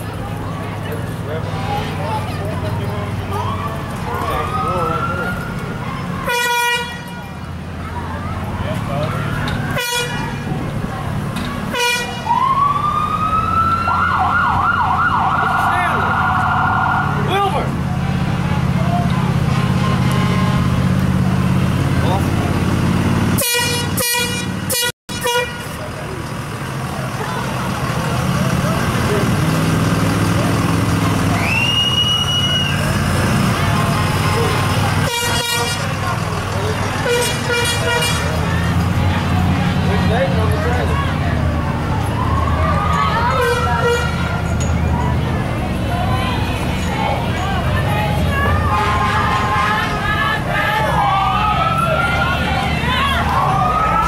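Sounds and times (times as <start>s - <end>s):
vehicle engine hum: 0.0s - 54.0s
long horn blast: 6.2s - 7.3s, 9.7s - 10.5s, 11.7s - 12.4s, 19.4s - 21.6s, 23.4s - 25.9s, 35.0s - 36.1s, 37.0s - 38.6s, 43.3s - 44.4s, 48.4s - 50.8s
short horn toots: 23.4s - 25.8s, 35.0s - 35.9s.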